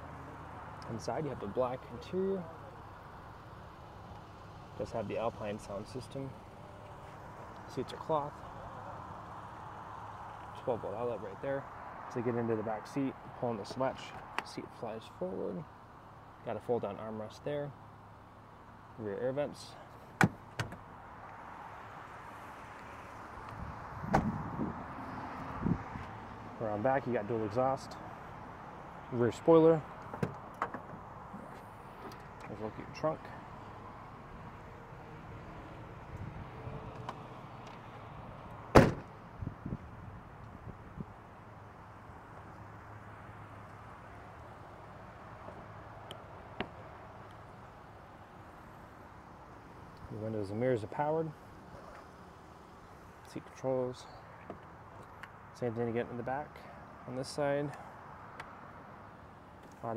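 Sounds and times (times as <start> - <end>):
outdoor background noise: 0.0 - 59.9
car door shutting: 20.2 - 20.8, 24.0 - 24.5, 38.7 - 39.1.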